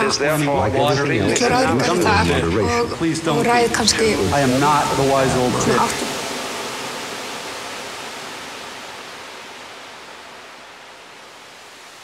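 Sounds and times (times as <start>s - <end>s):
steady electronic noise hiss: 0.0s - 12.0s.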